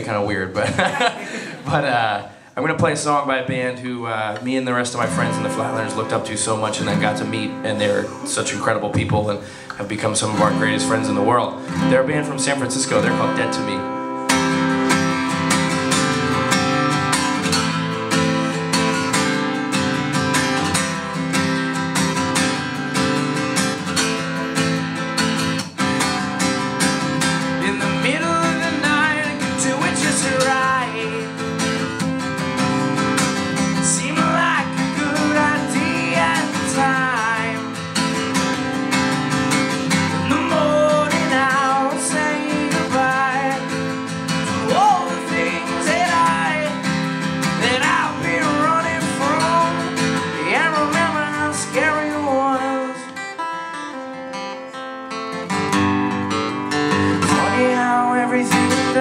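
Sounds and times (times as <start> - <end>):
acoustic guitar strummed hard: 0.0 - 2.2, 4.4 - 59.0
man singing: 0.0 - 14.2, 27.6 - 31.9, 33.6 - 37.8, 39.8 - 53.3, 57.0 - 59.0.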